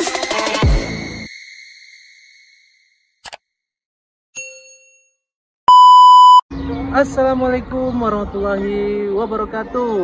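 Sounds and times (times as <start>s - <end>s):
loud steady beep: 5.7s - 6.5s.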